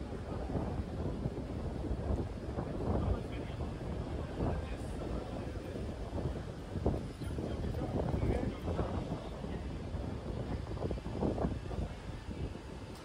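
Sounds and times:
passers-by talking: 0.0 - 13.0
wind rumbling on microphone: 0.0 - 13.0.

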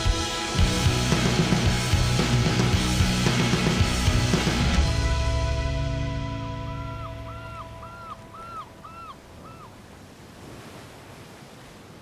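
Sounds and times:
background music: 0.0 - 8.4
ocean surf: 0.0 - 12.0.

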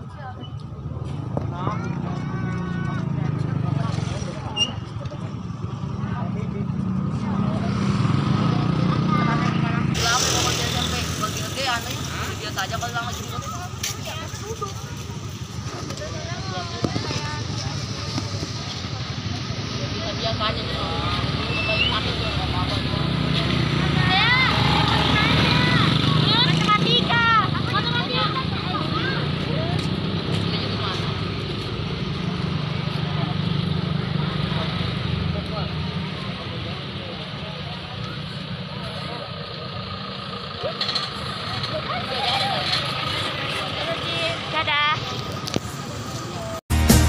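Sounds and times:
children chattering and calling out: 0.0 - 46.6.

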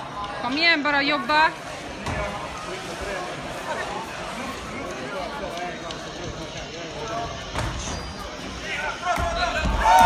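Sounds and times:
indistinct voices in a hall: 0.0 - 10.0.

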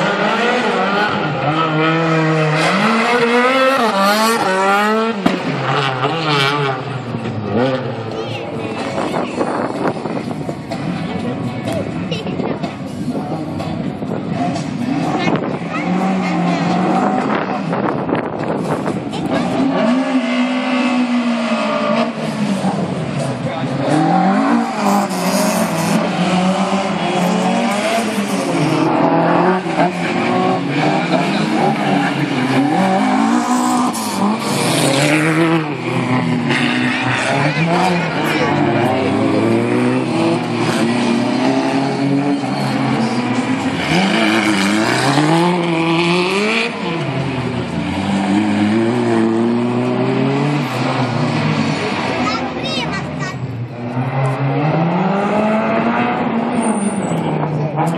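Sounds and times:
car engine revving hard: 0.0 - 8.1, 14.2 - 52.6, 53.5 - 57.9
tyre squeal: 24.7 - 26.0, 41.6 - 43.4, 56.6 - 57.2.

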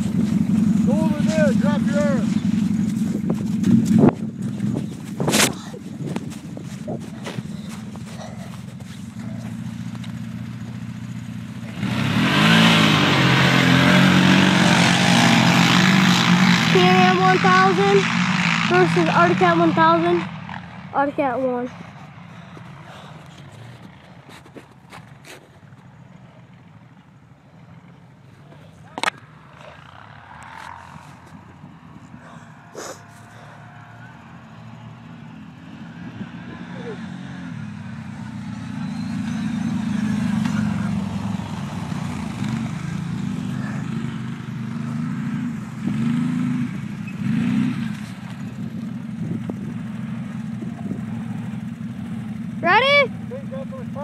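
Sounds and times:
atv engines running: 0.0 - 54.0.

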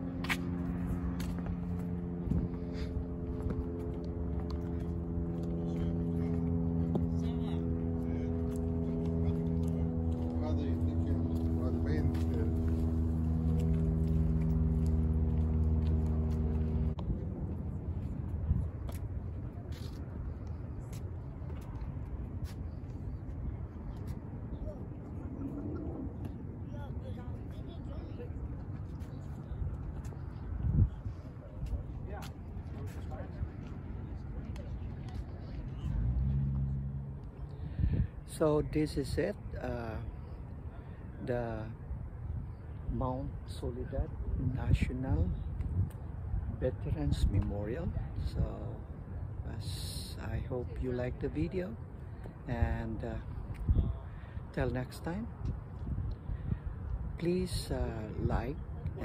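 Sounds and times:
low mechanical hum: 0.0 - 59.0.

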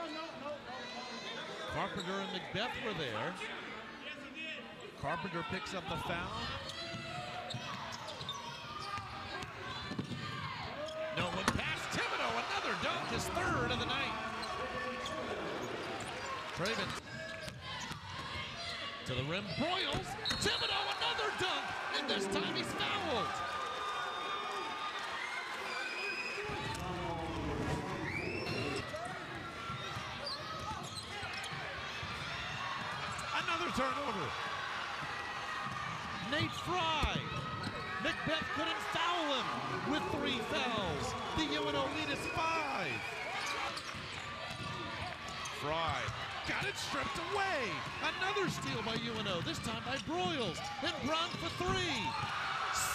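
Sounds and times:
crowd noise and voices: 0.0 - 52.9
sneaker squeaks: 6.6 - 9.2, 14.3 - 18.8, 19.5 - 20.8, 28.0 - 29.1, 29.7 - 31.8, 42.3 - 45.6
murmur of voices: 9.2 - 23.6.

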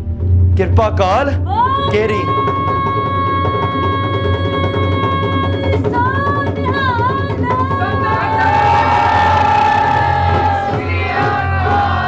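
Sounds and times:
steady low drone: 0.0 - 2.0
voices singing a held note: 7.7 - 12.0.

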